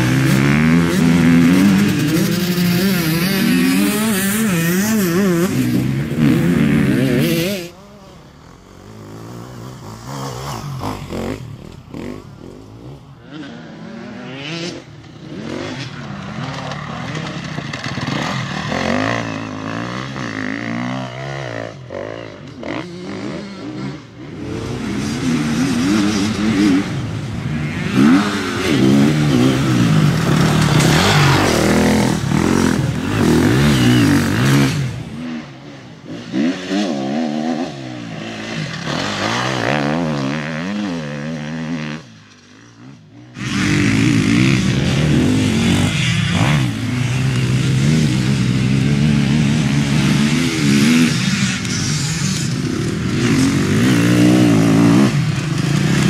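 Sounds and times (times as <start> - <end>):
motorbike engine revving: 0.0 - 56.0.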